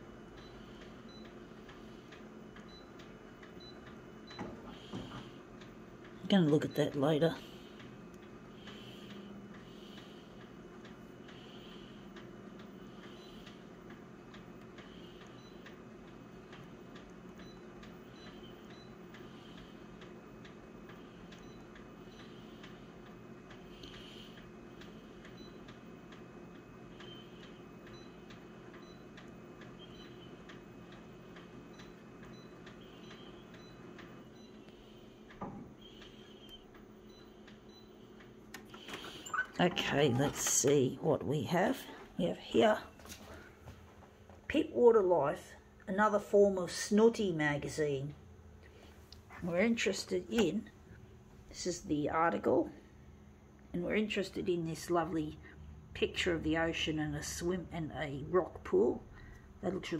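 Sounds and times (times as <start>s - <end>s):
copier humming: 0.0s - 59.9s
faint regular ticking: 0.3s - 35.4s.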